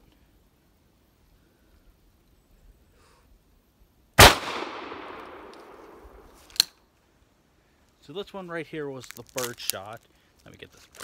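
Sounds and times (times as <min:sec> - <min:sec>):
shotgun shot echoing: 0:04.2 - 0:06.3.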